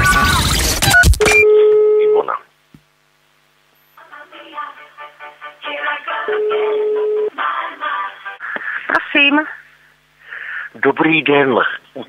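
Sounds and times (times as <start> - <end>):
burst of noise and beeps: 0.0 - 1.6
low telephone tone: 1.4 - 2.4, 6.3 - 7.4.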